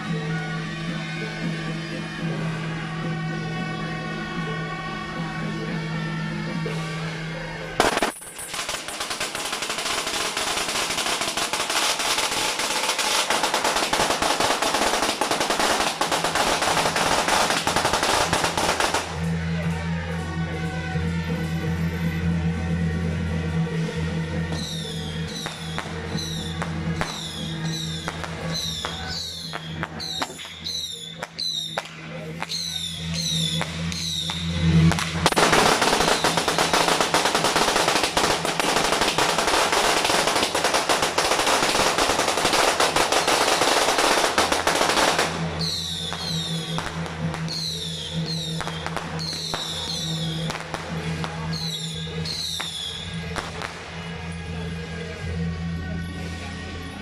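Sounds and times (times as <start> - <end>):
music with low drone: 0.0 - 57.0
firecrackers crackling: 7.6 - 20.4, 23.3 - 55.1.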